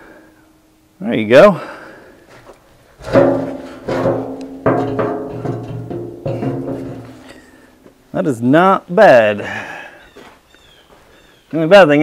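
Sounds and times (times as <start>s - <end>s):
metal drum knocking and ringing: 3.0s - 8.0s.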